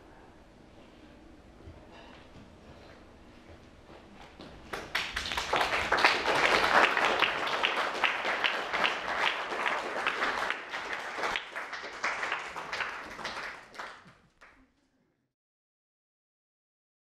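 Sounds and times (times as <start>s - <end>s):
audience applauding: 4.7s - 14.6s.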